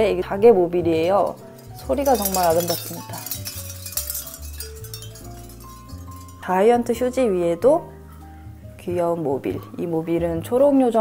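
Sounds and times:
soft mallet music with bass: 0:00.0 - 0:11.0
shell mobile clinking: 0:01.1 - 0:06.5.

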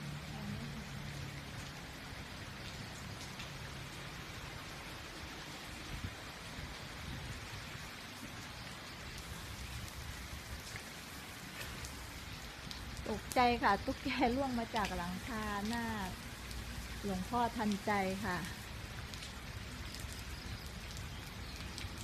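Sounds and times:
steady rain falling: 0:00.0 - 0:22.0
faint drips: 0:08.1 - 0:22.0.

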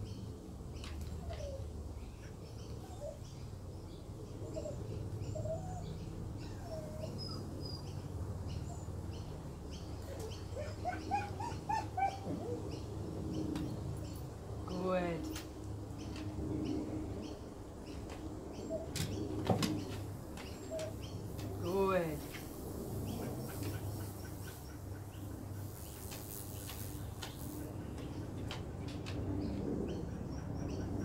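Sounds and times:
birds chirping: 0:00.8 - 0:31.0
bird cooing: 0:10.1 - 0:12.7.

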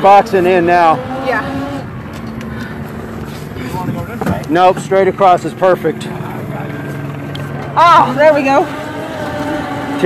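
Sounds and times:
small vehicle running on road: 0:00.0 - 0:10.0.

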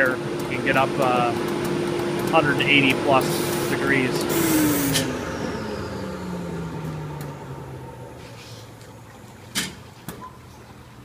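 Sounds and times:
motor winding down: 0:00.0 - 0:08.5.

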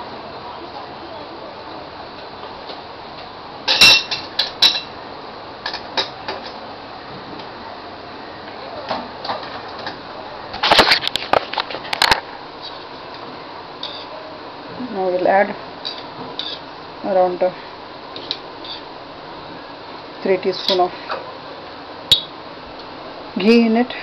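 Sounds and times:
steady background hiss: 0:00.0 - 0:24.0
metal utensils clinking: 0:03.7 - 0:04.9.

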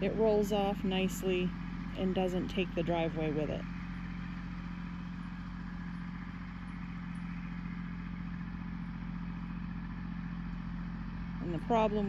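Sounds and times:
tractor diesel engine running: 0:00.0 - 0:12.0.

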